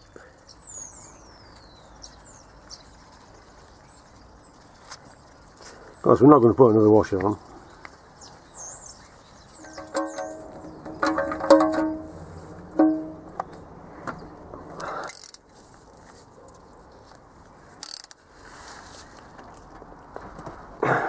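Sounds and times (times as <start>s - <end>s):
metallic clinks of spanner: 9.6s - 12.2s.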